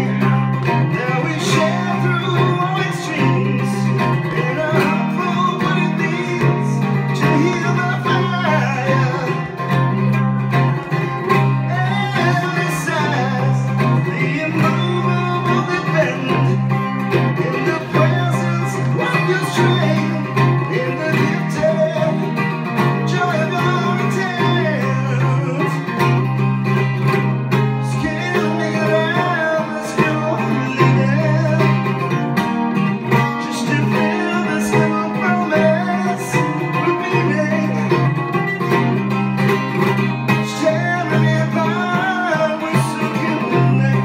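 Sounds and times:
cigar box guitar strumming: 0.0s - 44.0s
man singing: 0.0s - 44.0s.

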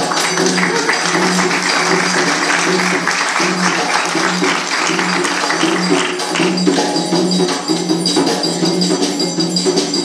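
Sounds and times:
hand percussion rattling: 0.0s - 10.0s.

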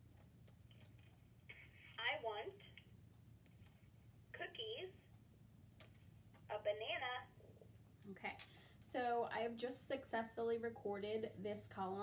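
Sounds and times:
woman's recorded voice from small speaker: 1.7s - 2.8s, 4.4s - 5.1s, 6.5s - 7.4s, 8.0s - 12.0s.

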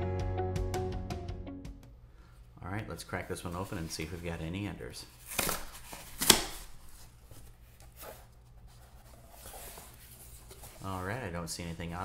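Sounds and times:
cardboard handling: 5.2s - 12.0s
cardboard flaps snapping free: 5.3s - 6.7s.

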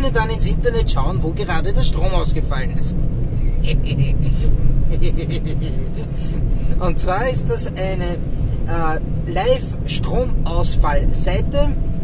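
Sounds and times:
loud steady low rumble: 0.0s - 12.0s
man chuckling quietly: 3.4s - 6.3s.

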